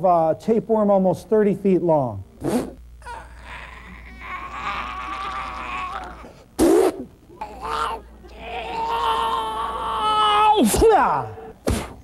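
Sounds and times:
man groaning and wailing: 3.0s - 6.4s, 7.4s - 11.4s.

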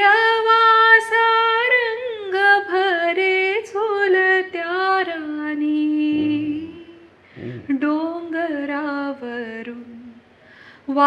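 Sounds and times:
woman singing unaccompanied: 0.0s - 10.2s.

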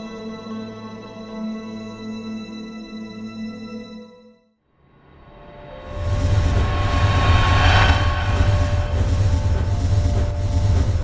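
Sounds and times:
whoosh: 5.7s - 11.0s
deep steady rumble: 6.0s - 11.0s.

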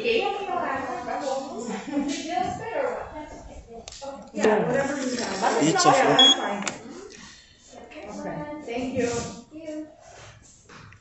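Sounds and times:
voices talking: 4.2s - 7.1s
high electronic beep: 6.0s - 6.5s.

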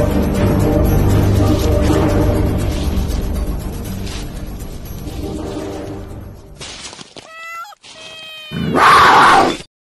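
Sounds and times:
cat-like yowl: 7.2s - 9.6s.

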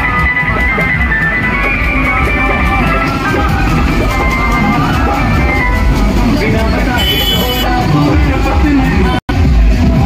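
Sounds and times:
amplified sound from loudspeakers: 0.0s - 9.2s
voices: 0.8s - 9.2s
low rumble: 1.8s - 7.0s.

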